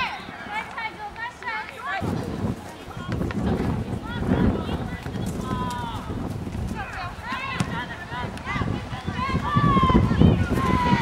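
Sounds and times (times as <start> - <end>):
people shouting outdoors: 0.0 - 2.2, 6.8 - 11.0.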